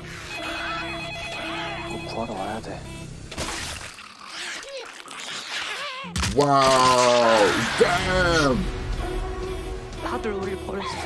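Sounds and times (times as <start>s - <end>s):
telephone ringing: 0.3s - 2.6s.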